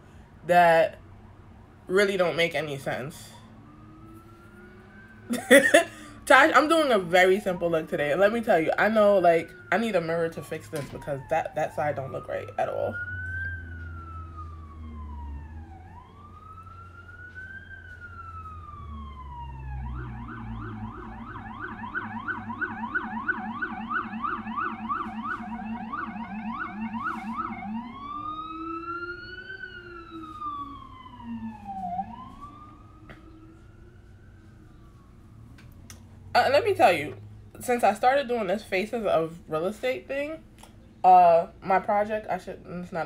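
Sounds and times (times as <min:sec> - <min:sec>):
emergency vehicle siren: 0:00.0 - 0:41.7.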